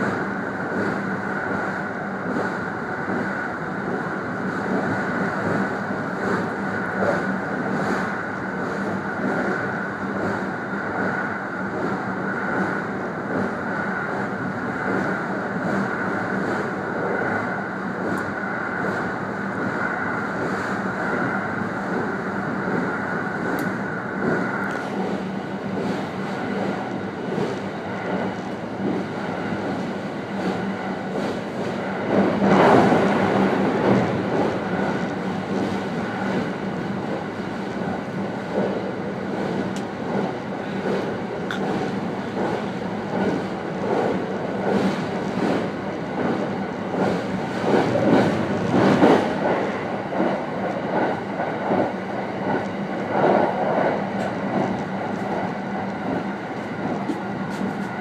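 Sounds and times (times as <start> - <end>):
constant low hum: 0.0 - 58.0
rail clacks: 0.0 - 58.0
train wheels rumbling on rail: 0.0 - 58.0.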